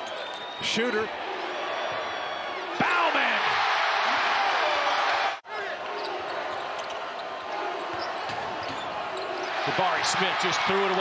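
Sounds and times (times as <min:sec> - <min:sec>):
arena crowd noise: 0:00.0 - 0:11.0
crowd cheering loudly: 0:00.0 - 0:11.0.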